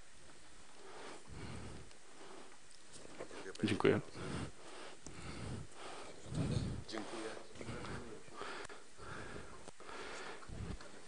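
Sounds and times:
soft low murmur: 0.0s - 11.0s.

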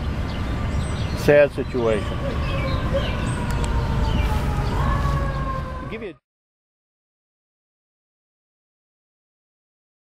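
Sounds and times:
low traffic rumble: 0.0s - 6.2s.

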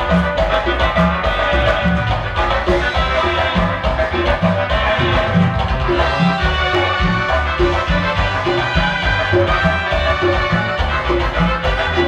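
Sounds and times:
live dance band playing: 0.0s - 12.0s
two-note bass line: 0.0s - 12.0s.

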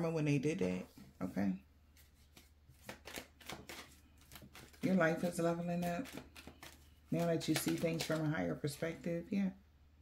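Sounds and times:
cards being shuffled: 1.9s - 9.0s.

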